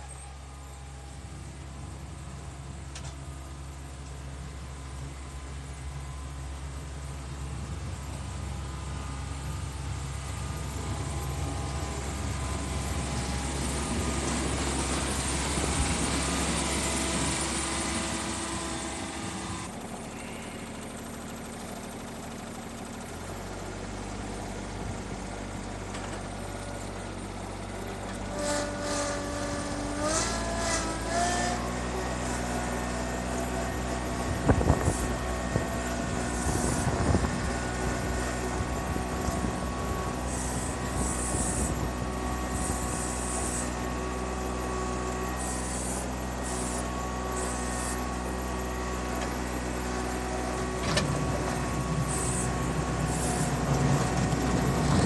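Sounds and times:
diesel mower engine running: 0:00.0 - 0:55.0.

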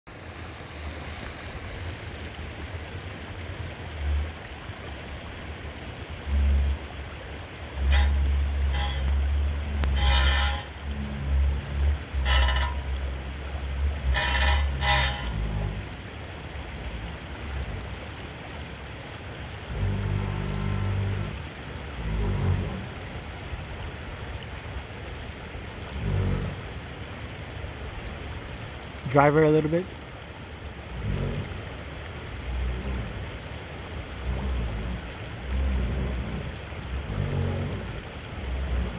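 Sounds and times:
engine rumble: 0:00.0 - 0:38.9
creek running over rocks: 0:00.1 - 0:38.9.

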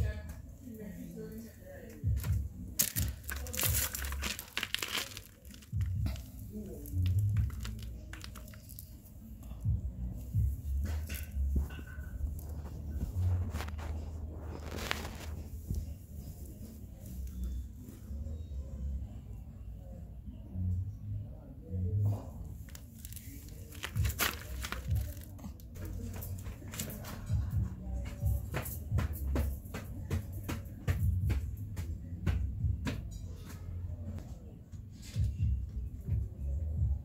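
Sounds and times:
fabric rustling on microphone: 0:11.8 - 0:17.3, 0:22.6 - 0:27.0.

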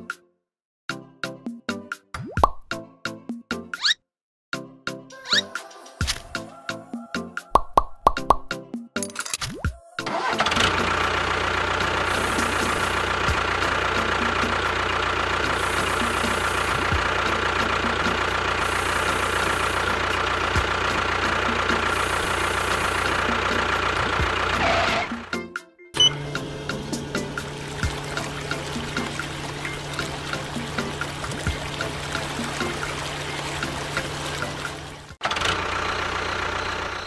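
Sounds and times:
background music: 0:00.9 - 0:03.8, 0:04.6 - 0:35.2
small motor running: 0:10.3 - 0:14.8, 0:15.4 - 0:25.1.

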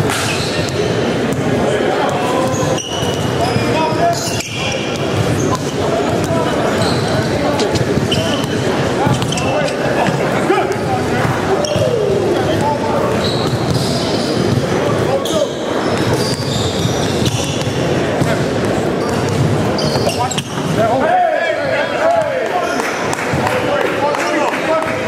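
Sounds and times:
sneaker squeaks: 0:00.0 - 0:20.8
hubbub of people talking: 0:00.0 - 0:25.0
basketballs bouncing on wooden floor: 0:00.2 - 0:14.8, 0:15.8 - 0:20.8.

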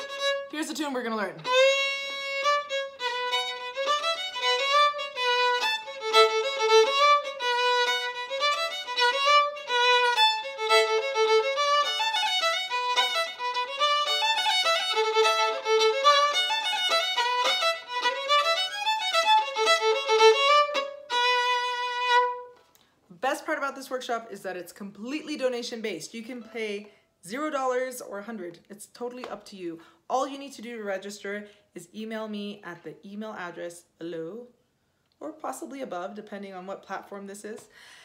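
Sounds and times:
solo fiddle playing a reel: 0:00.0 - 0:00.6, 0:01.4 - 0:22.6.

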